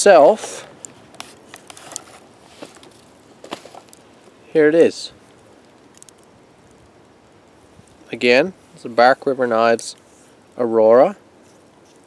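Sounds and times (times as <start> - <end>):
small ticks: 5.3 - 7.1.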